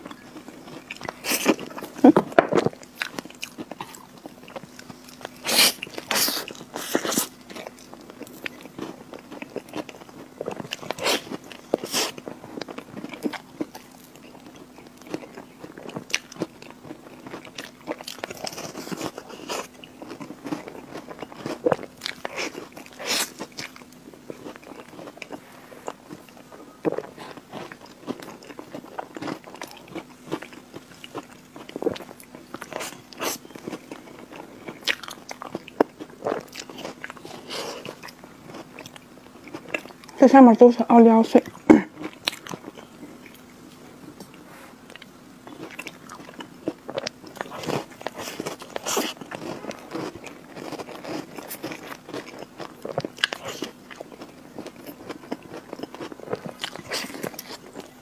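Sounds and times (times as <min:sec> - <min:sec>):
person chewing: 0:00.0 - 0:40.2, 0:41.4 - 0:58.0
cookie crunching: 0:00.0 - 0:40.3, 0:44.2 - 0:58.0
low steady hum: 0:00.0 - 0:58.0.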